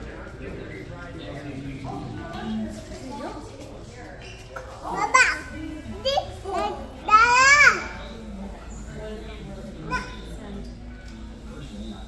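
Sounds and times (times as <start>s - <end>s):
low room murmur: 0.0s - 12.0s.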